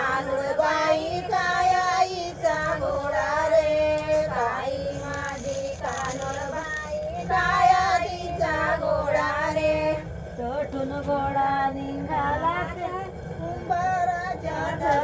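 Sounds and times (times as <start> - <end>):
women singing unaccompanied: 0.0 - 15.0.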